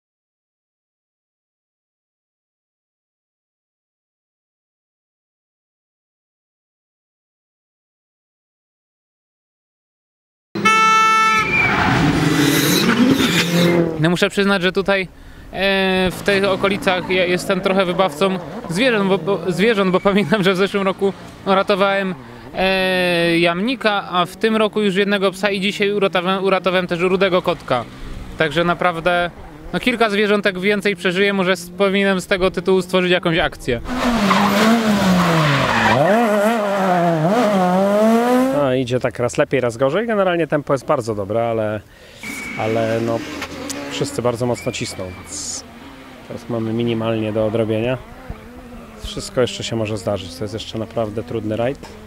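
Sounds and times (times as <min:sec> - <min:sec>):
air horn blast: 0:10.6 - 0:13.8
rally car engine approaching: 0:10.6 - 0:38.7, 0:42.4 - 0:52.0
tyre and road noise: 0:10.6 - 0:39.4, 0:42.1 - 0:52.0.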